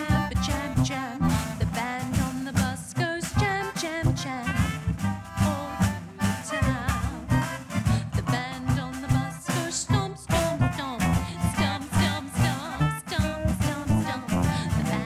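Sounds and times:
saxophone melody: 0.0s - 2.4s, 3.0s - 15.0s
accordion: 0.0s - 15.0s
double bass: 0.0s - 15.0s
snare drum: 0.0s - 15.0s
sousaphone bass notes: 0.0s - 15.0s.

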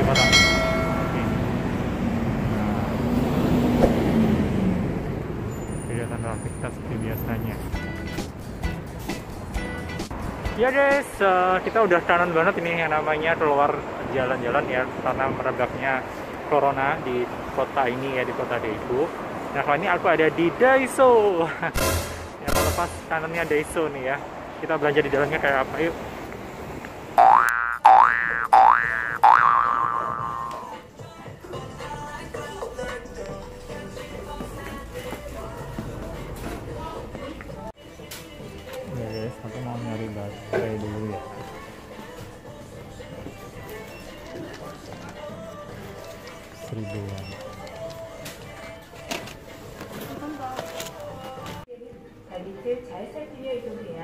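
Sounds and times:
road traffic passing: 0.0s - 51.6s
cartoon boing sound effect: 27.2s - 30.7s.

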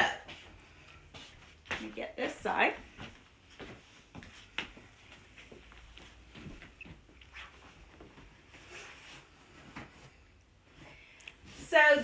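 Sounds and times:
rustling of bedsheets: 0.2s - 12.0s.

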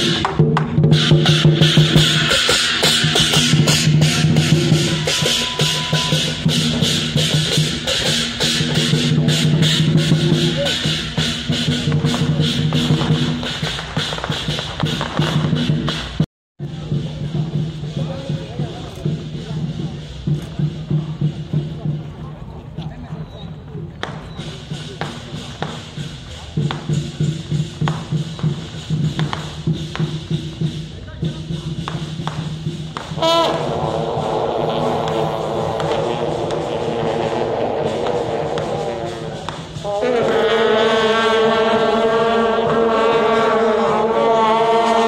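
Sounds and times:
hand cymbals clashing: 0.0s - 16.1s, 24.1s - 36.9s
drum beat: 0.0s - 45.0s.

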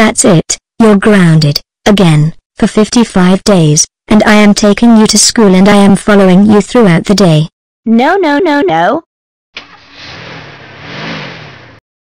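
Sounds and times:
car driving by: 9.6s - 11.8s.

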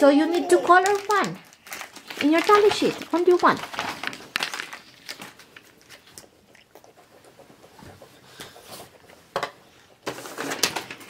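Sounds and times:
paper rustling: 0.3s - 6.3s, 10.0s - 11.0s.

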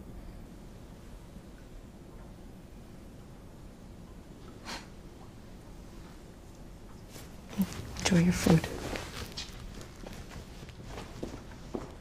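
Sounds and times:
footsteps on concrete: 7.8s - 12.0s.

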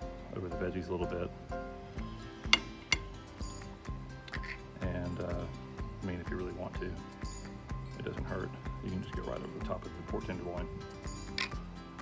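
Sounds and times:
background music: 0.0s - 12.0s
metal spoon clinking on bowl: 2.5s - 3.1s.

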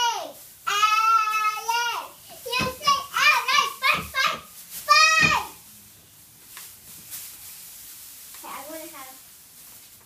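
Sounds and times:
girl chanting a cheer: 0.0s - 5.6s.

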